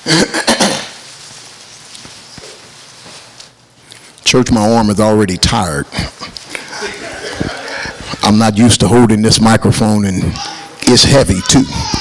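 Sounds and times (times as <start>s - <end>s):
man clearing his throat: 0.0s - 1.0s, 5.8s - 8.1s.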